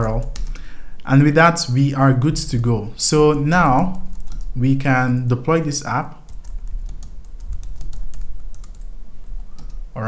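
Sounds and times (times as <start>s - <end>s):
typing on computer keyboard: 0.0s - 0.6s, 4.1s - 4.6s, 6.3s - 9.8s.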